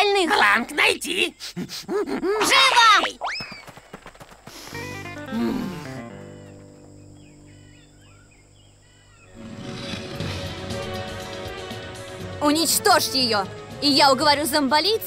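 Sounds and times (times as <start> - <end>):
cartoon background music: 9.5 - 15.0.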